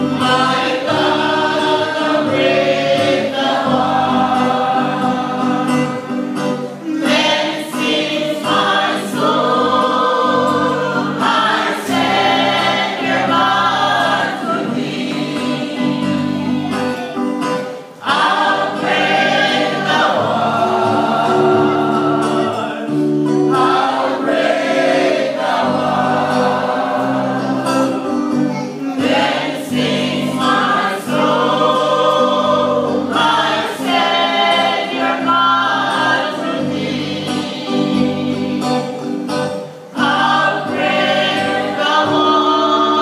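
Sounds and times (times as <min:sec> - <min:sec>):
voices singing a hymn: 0:00.0 - 0:43.0.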